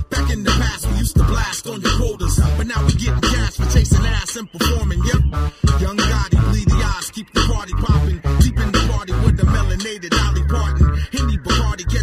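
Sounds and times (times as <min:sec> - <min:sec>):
heavy bass: 0:00.0 - 0:12.0
rapping over a beat: 0:00.0 - 0:12.0.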